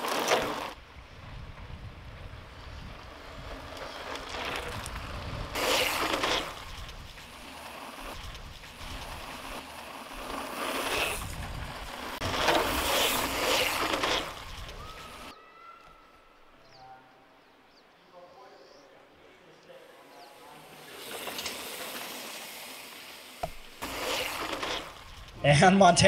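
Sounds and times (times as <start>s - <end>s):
mountain bikes passing on gravel: 0.0s - 15.4s, 19.8s - 25.5s
wind rumbling on microphone: 0.8s - 9.6s, 11.0s - 15.3s.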